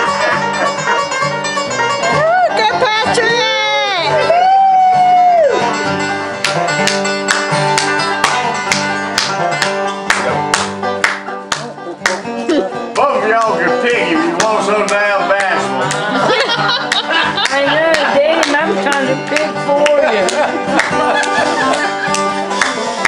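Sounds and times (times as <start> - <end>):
banjo and acoustic guitar playing: 0.0 - 23.0
person singing: 11.6 - 16.4.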